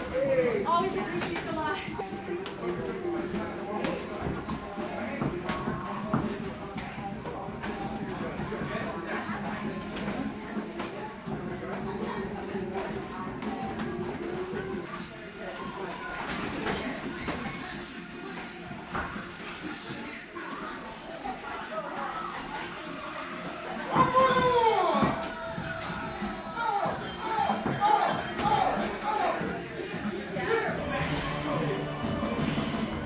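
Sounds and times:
music: 0.0s - 33.0s
voices: 0.0s - 33.0s.

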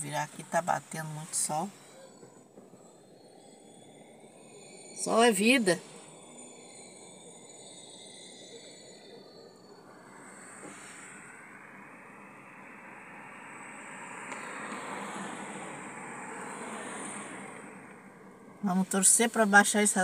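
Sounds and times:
car road and tyre noise: 0.0s - 20.0s.

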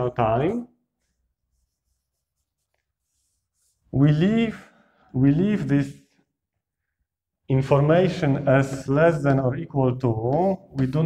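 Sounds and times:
chalk scratching on a blackboard: 1.0s - 4.0s.

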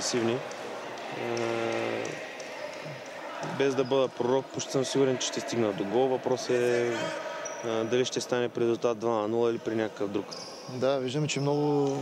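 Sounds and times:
sports hall background noise: 0.0s - 12.0s.

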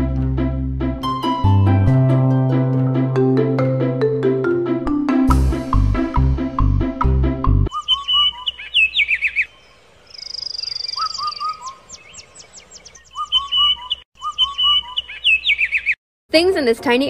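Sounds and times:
marimba-like music: 1.0s - 7.7s
high fast bird trill: 7.7s - 16.0s
songbirds chirping and whistling: 7.7s - 16.0s.

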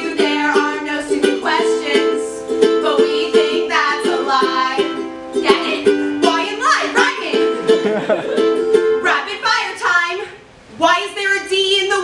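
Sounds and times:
ukulele strumming: 0.0s - 10.2s.

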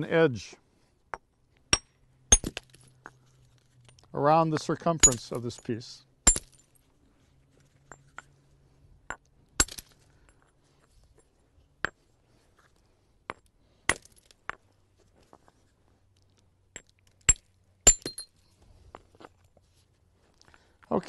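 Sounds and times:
stone hammer striking flint: 1.1s - 3.2s, 4.6s - 5.4s, 6.2s - 6.6s, 9.1s - 10.4s, 13.3s - 14.6s, 16.7s - 18.3s.

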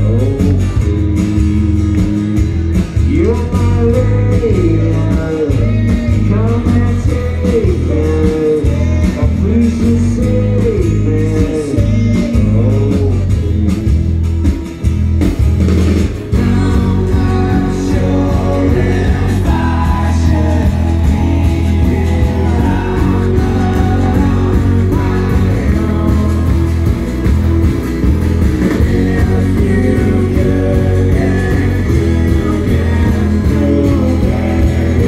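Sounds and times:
live band playing: 0.0s - 35.0s
person singing: 3.0s - 13.6s, 16.3s - 27.3s, 28.6s - 35.0s.

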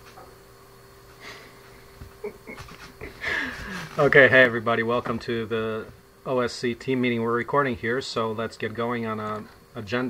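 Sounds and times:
man's heavy out-breath: 3.2s - 4.0s.

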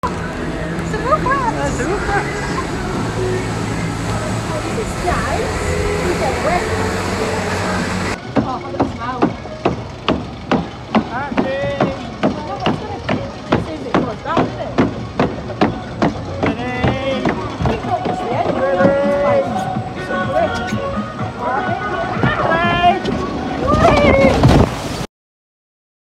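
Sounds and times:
broad rushing noise: 0.0s - 25.1s.

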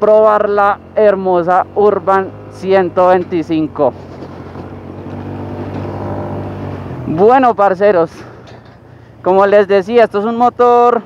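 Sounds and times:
scooter engine running: 0.0s - 9.2s.

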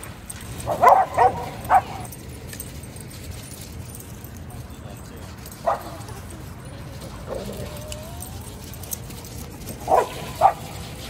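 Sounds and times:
dog barking: 0.6s - 2.1s, 5.6s - 6.1s, 9.8s - 10.9s.

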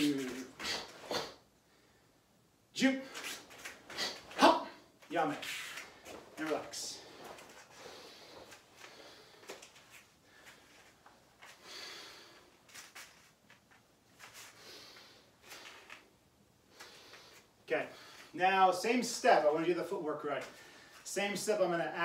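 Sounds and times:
man's sharp vocal bursts: 2.8s - 5.7s.

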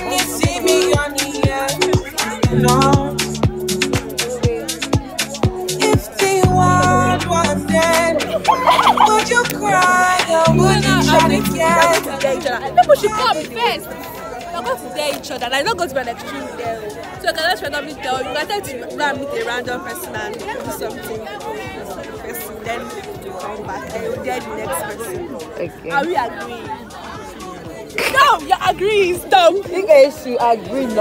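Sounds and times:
background music: 0.0s - 20.2s
people talking and chattering: 0.0s - 31.0s.

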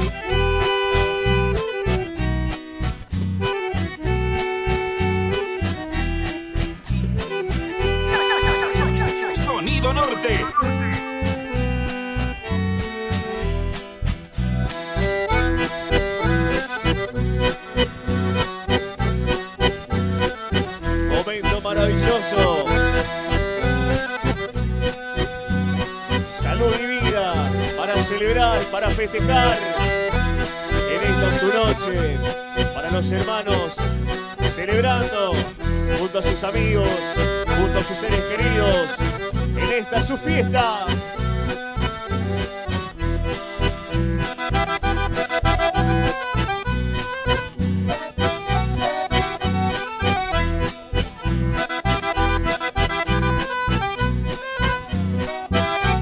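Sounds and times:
accordion melody: 0.0s - 56.0s
dance band playing a waltz: 0.0s - 56.0s
steady bass beat: 7.1s - 13.4s.

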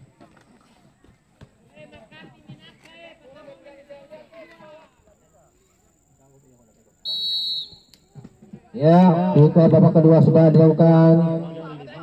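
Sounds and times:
referee's whistle blast: 7.0s - 7.9s.

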